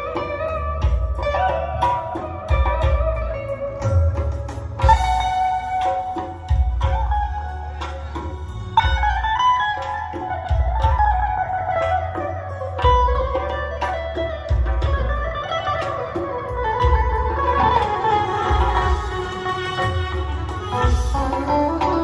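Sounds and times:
electric guitar melody: 0.0s - 22.0s
hand drum beat: 0.0s - 22.0s
heavy bass notes: 0.0s - 22.0s
high ticking rhythm: 0.0s - 22.0s.

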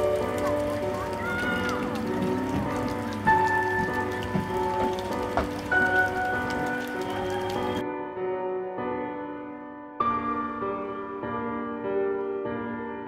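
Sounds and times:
fountain splashing into pond: 0.0s - 7.8s
background music of held notes: 0.0s - 13.0s.

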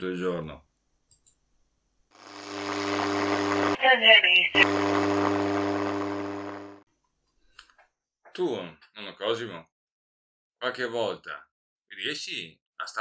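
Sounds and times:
radio buzzing hum: 2.2s - 6.8s
radio hiss: 2.2s - 6.8s.

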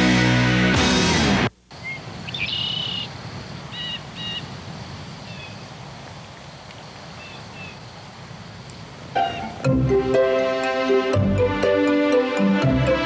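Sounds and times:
small birds chirping: 1.7s - 4.5s, 5.1s - 5.7s, 6.6s - 7.9s.

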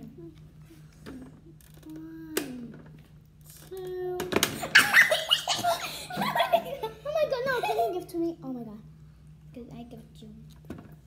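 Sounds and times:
children laughing and giggling: 4.6s - 8.2s.

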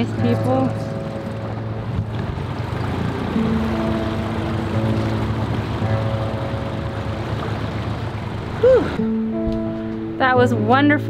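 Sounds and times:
water rushing against hull: 0.0s - 10.0s
outboard motor running: 0.0s - 10.4s
soft background music: 0.0s - 11.0s.

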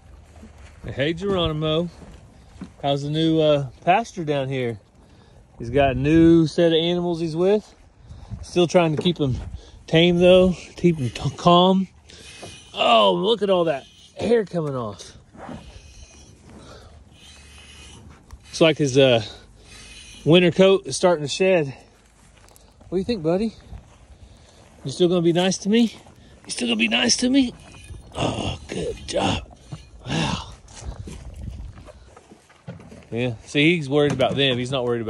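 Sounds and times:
bull breathing: 1.8s - 6.3s, 7.2s - 33.5s.

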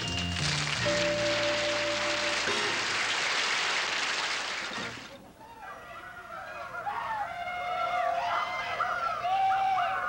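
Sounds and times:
audience applauding: 0.0s - 5.1s.

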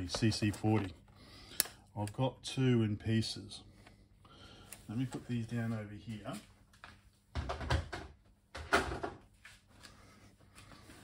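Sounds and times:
objects knocking and scraping: 7.3s - 9.3s.

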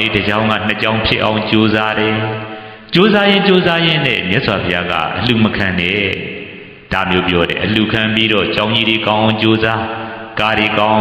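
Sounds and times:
man chanting sermon: 0.0s - 11.0s.

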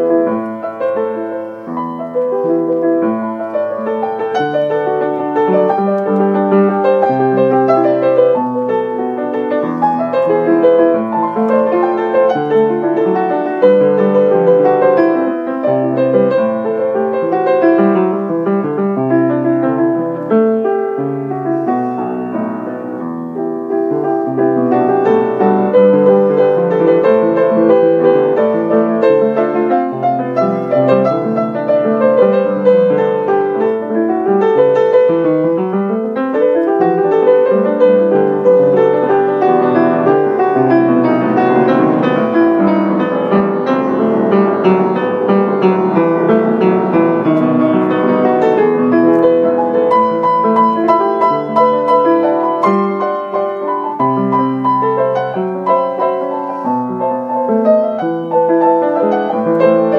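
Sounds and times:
upright piano improvising: 0.0s - 59.9s.

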